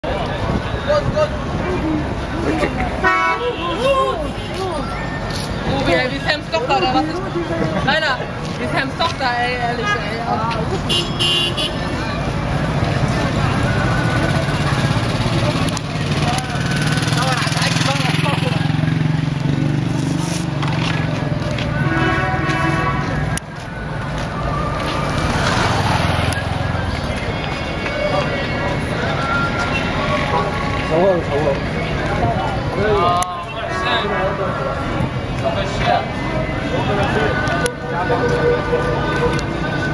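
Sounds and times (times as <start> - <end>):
car engines humming: 0.0 - 39.9
car horn toot: 10.9 - 11.8, 21.8 - 23.1
people talking: 11.8 - 18.8.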